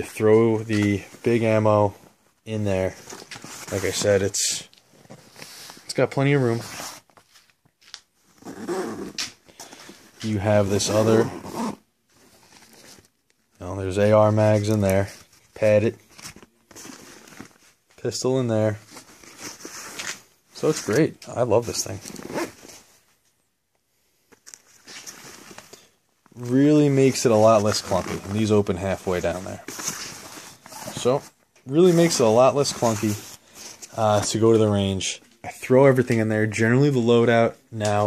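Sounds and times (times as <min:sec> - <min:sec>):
fabric bags rustling: 0:00.0 - 0:13.2, 0:24.4 - 0:34.5.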